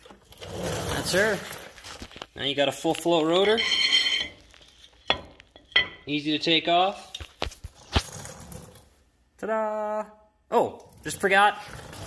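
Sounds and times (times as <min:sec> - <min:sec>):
high metallic ring: 0:03.4 - 0:04.4.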